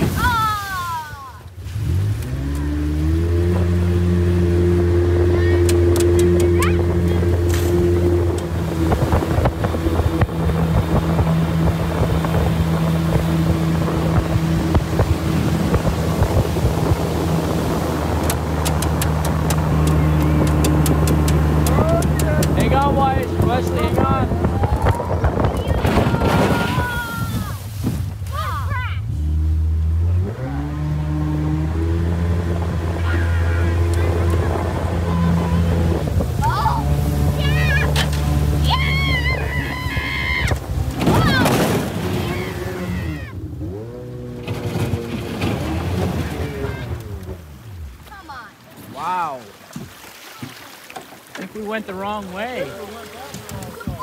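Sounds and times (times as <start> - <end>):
outboard jet motor running: 0.0 - 54.0.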